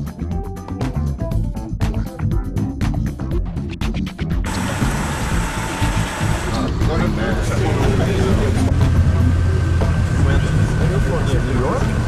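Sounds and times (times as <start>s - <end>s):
guitar music: 4.3s - 12.0s
vehicle road and engine rumble: 4.5s - 12.0s
people talking: 6.6s - 12.0s.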